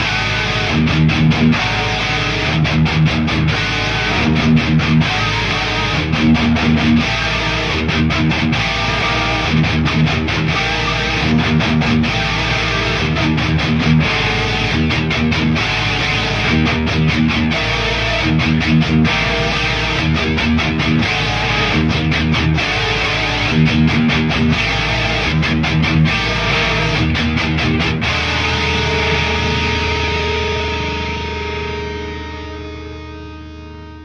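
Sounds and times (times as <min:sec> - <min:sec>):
distorted electric guitar riff: 0:00.0 - 0:34.0.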